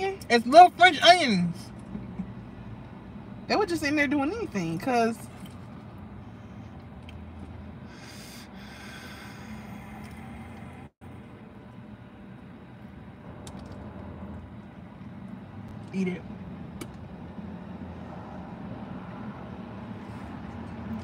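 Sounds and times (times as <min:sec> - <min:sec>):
breathing and eating sounds: 0:07.8 - 0:10.6.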